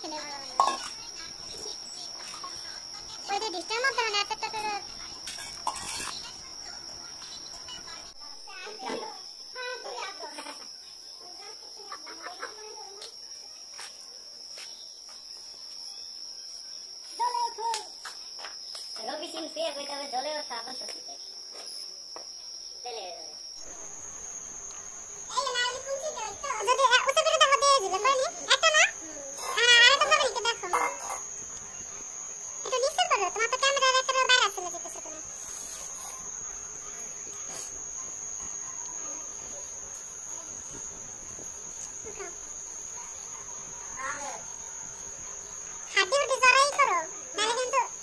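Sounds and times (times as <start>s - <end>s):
crickets trilling: 0.0s - 48.0s.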